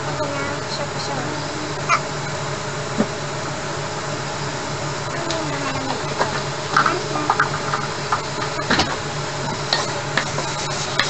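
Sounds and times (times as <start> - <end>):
low pulsing hum: 0.0 - 11.0
meat sizzling in a frying pan: 5.9 - 11.0.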